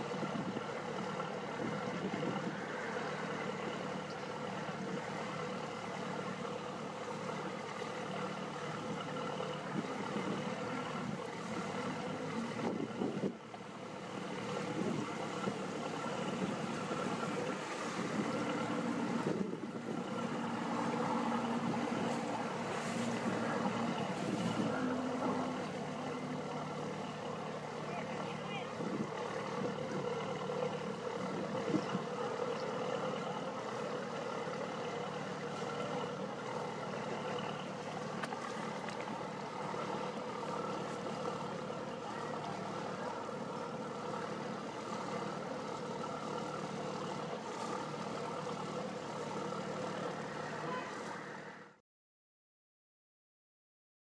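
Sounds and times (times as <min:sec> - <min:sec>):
boat diesel engine humming: 0:00.0 - 0:51.8.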